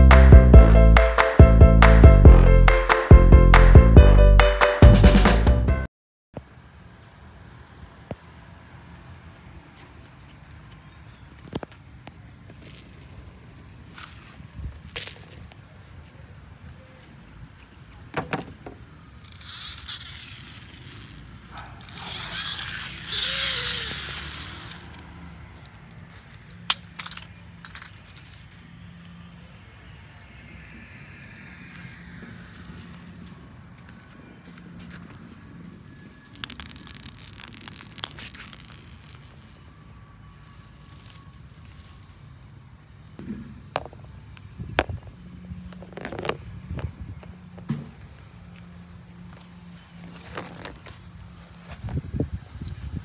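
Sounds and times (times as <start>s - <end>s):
plastic toy clicks and knocks: 36.4s - 39.8s.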